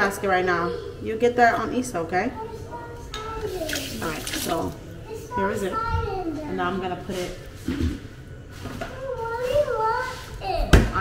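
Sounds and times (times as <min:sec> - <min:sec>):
child's high-pitched voice: 0:02.3 - 0:04.1, 0:05.1 - 0:06.5, 0:08.8 - 0:10.9.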